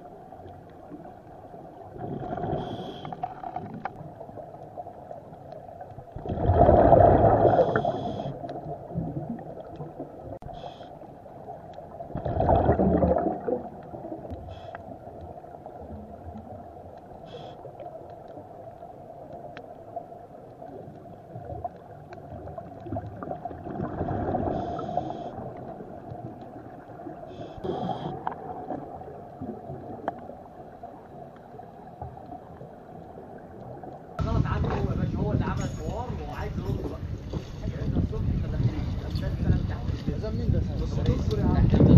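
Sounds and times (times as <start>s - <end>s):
muffled underwater background: 0.0s - 22.8s, 23.8s - 41.9s
gurgling rush of bubbles: 1.8s - 5.2s, 6.0s - 10.4s, 11.9s - 14.3s, 21.3s - 31.2s
people talking: 34.2s - 37.0s, 37.8s - 41.9s
boat rumble: 34.2s - 41.9s
wind on microphone: 34.2s - 41.9s.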